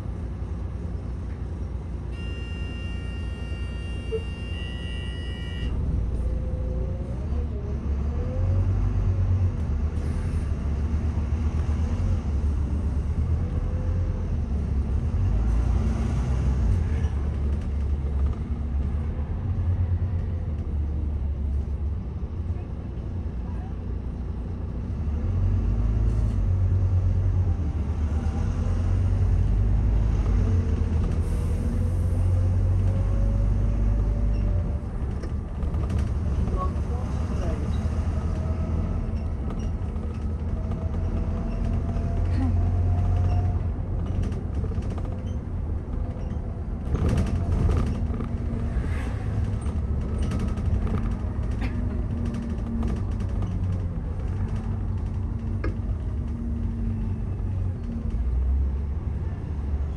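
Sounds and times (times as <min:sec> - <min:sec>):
bus body rattling and creaking: 0:00.0 - 0:59.9
bus engine rumble and whine: 0:00.0 - 0:59.9.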